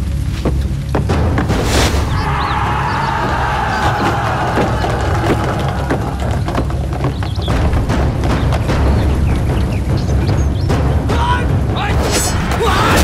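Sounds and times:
tense music score: 0:00.0 - 0:13.0
sharp knocks and thuds: 0:00.3 - 0:12.7.

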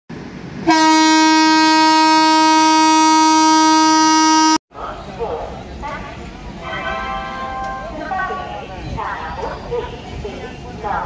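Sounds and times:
train horn long note: 0:00.6 - 0:04.6.

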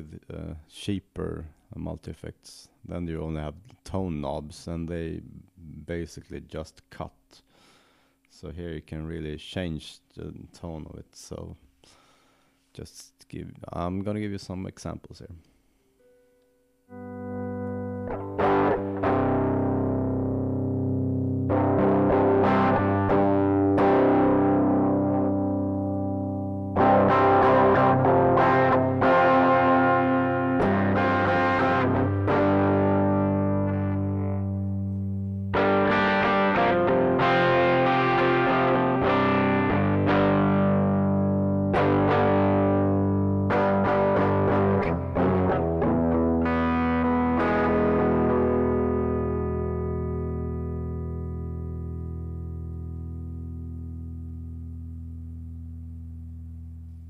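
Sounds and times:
distorted electric guitar chords: 0:16.8 - 0:57.0.

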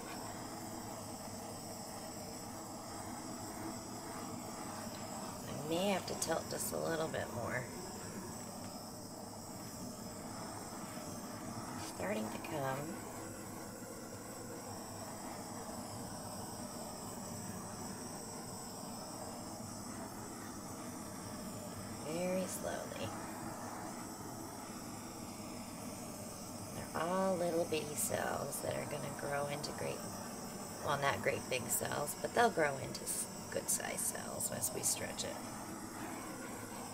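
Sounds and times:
butane torch hissing: 0:00.0 - 0:36.9.

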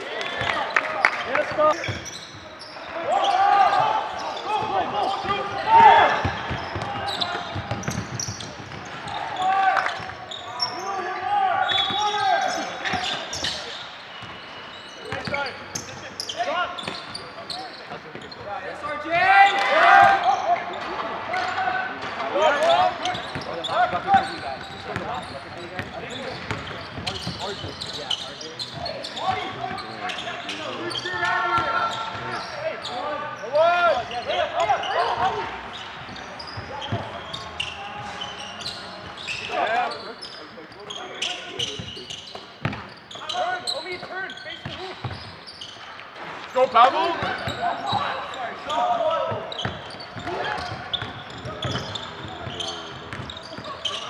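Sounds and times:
players shouting: 0:02.6 - 0:13.8, 0:18.7 - 0:25.0, 0:29.0 - 0:40.0.

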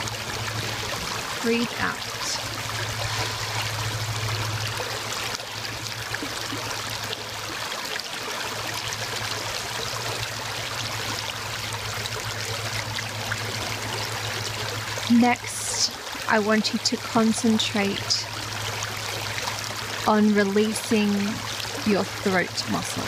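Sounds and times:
low hum: 0:00.0 - 0:07.5
creek water over stones: 0:00.0 - 0:23.0.

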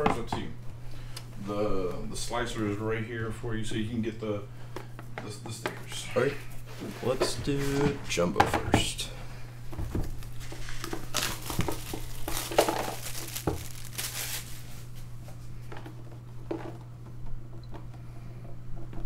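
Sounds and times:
steady low hum: 0:00.0 - 0:19.0
crinkling and light knocks: 0:09.6 - 0:19.0.

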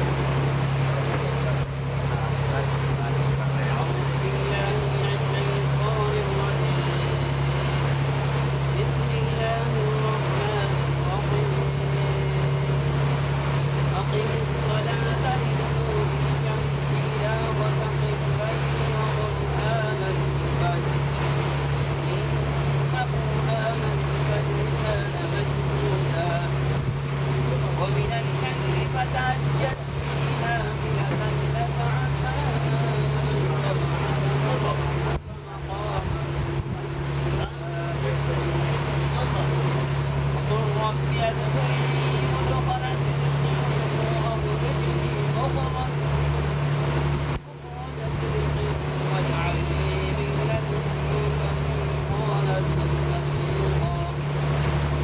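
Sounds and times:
boat engine droning: 0:00.0 - 0:55.0.

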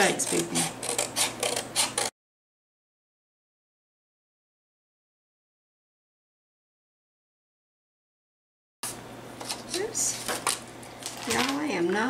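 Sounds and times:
scissors snipping cardstock: 0:00.0 - 0:02.1.

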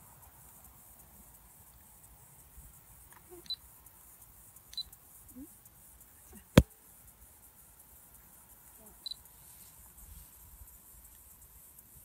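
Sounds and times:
faint ticks: 0:00.4 - 0:06.0, 0:10.6 - 0:12.0.

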